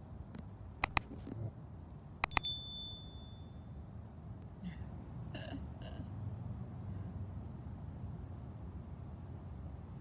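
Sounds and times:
quick mouse clicks: 0.8s - 1.1s
bright bell ding: 2.2s - 3.6s.

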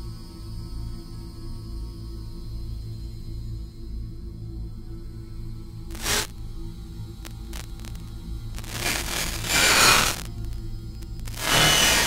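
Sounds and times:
static-like noise: 5.9s - 6.4s, 7.1s - 12.0s
low synthesizer hum: 5.9s - 12.0s
faint clicks: 7.2s - 11.5s.

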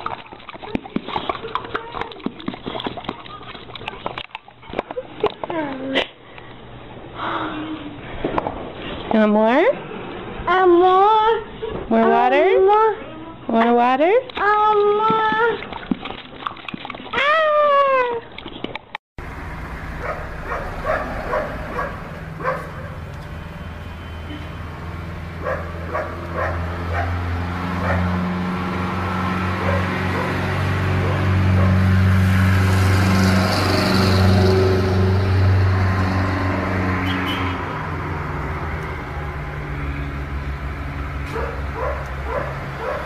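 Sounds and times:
dog barking: 20.0s - 23.0s, 25.4s - 27.2s, 27.8s - 28.1s, 29.6s - 30.4s, 31.0s - 31.8s, 41.3s - 43.0s.

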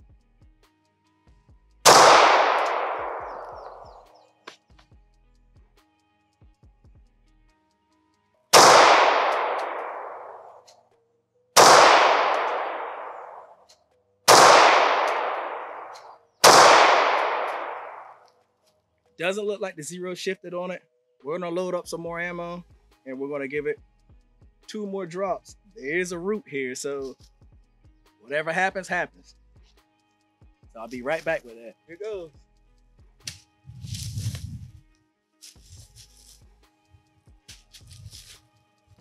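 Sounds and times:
pistol shots with ringing decay: 1.9s - 4.0s, 8.6s - 10.6s, 11.6s - 13.5s, 14.3s - 18.2s.

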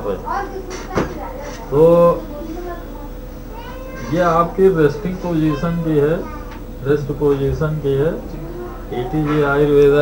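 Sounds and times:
faint murmur of voices: 0.0s - 10.0s.

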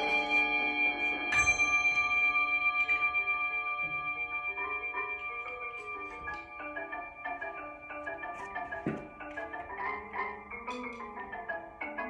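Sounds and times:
mallet keyboard percussion: 0.0s - 12.0s.

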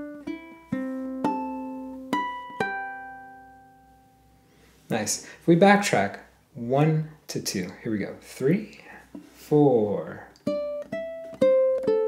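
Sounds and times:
ukulele harmonics: 0.0s - 4.4s, 8.6s - 12.0s.

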